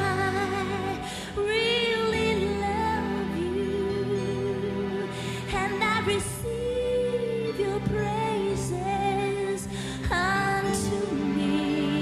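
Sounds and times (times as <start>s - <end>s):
worship music with singing: 0.0s - 12.0s.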